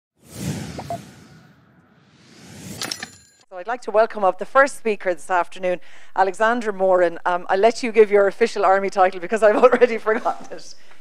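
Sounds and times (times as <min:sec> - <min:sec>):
whoosh sound effect: 0:00.2 - 0:03.1.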